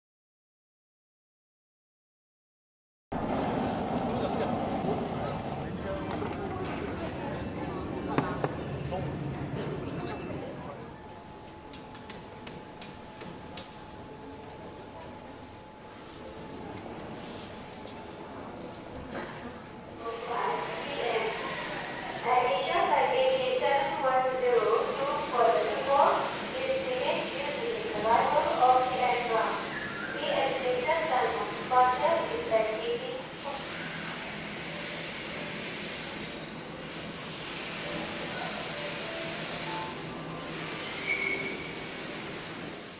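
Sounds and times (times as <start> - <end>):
chatter of many people: 3.8 - 11.1.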